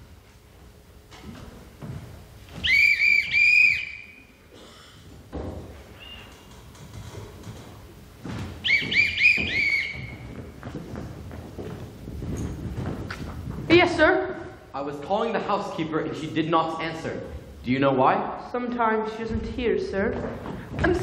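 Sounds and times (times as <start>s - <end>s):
footsteps on wooden stairs: 0.0s - 3.4s, 4.9s - 14.1s, 19.2s - 21.0s
bosun's whistle blasts: 2.6s - 4.4s, 8.6s - 10.1s.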